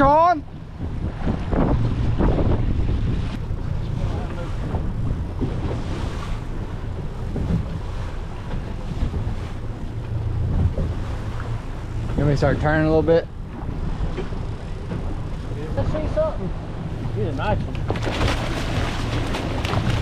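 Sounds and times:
outboard motor running: 0.0s - 20.0s
water washing past hull: 0.0s - 20.0s
wind buffeting microphone: 0.0s - 20.0s.

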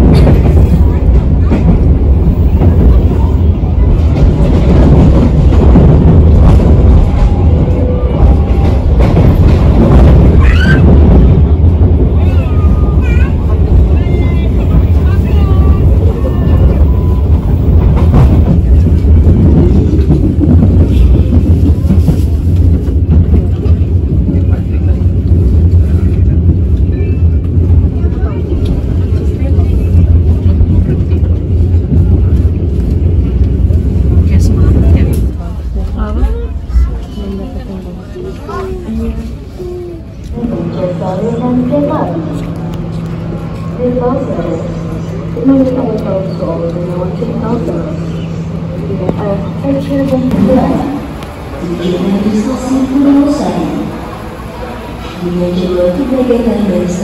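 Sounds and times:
train rumbling: 0.0s - 57.0s
voices: 10.3s - 22.1s, 34.2s - 57.0s.

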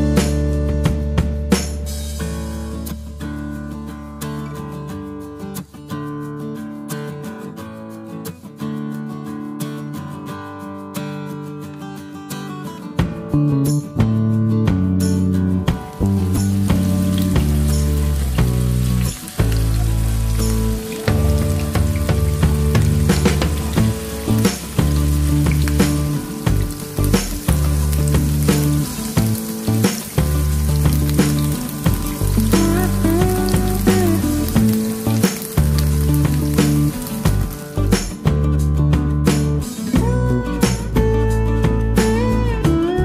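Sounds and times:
guitar music with bass line: 0.0s - 43.0s
tofu sizzling in hot oil: 15.9s - 38.1s.

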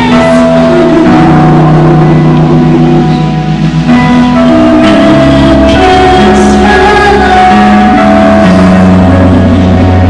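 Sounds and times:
loud backing music: 0.0s - 10.0s
woman singing into a microphone: 0.0s - 10.0s.

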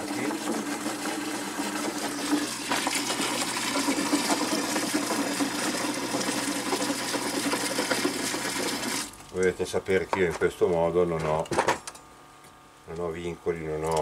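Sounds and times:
water running into plastic bucket: 0.0s - 9.4s.

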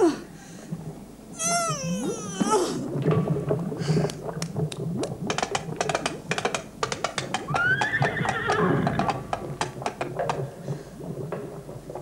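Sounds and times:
horse whinnying: 7.5s - 8.8s.

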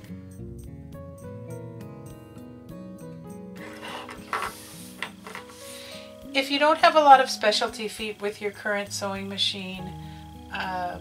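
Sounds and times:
background music with held notes: 0.0s - 11.0s
handling noise: 3.6s - 5.7s.

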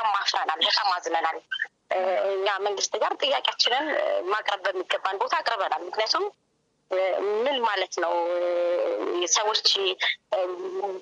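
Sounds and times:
person narrating: 0.0s - 6.3s, 6.9s - 11.0s.

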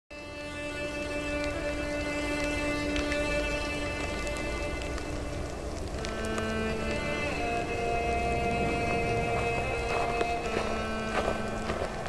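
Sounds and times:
low rumble: 5.3s - 10.7s.

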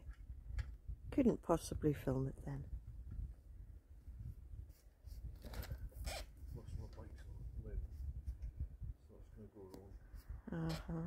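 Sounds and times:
nylon straps zipping tight: 5.4s - 6.4s.

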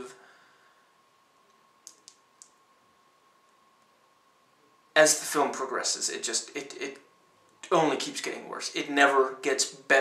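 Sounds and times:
faint steady hum: 0.0s - 10.0s
small quick clicks: 1.5s - 2.6s.

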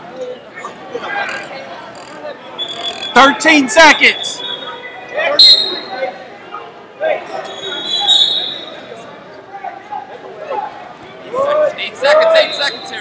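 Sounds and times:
shouting and chatter in hall: 0.0s - 13.0s.

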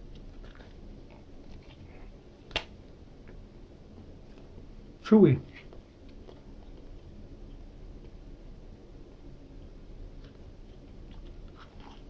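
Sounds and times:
person chewing: 10.7s - 12.0s.

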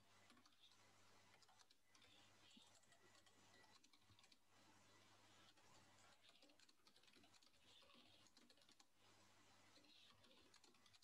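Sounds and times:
typing on computer keyboard: 0.3s - 4.4s, 6.0s - 8.9s, 9.8s - 11.0s.

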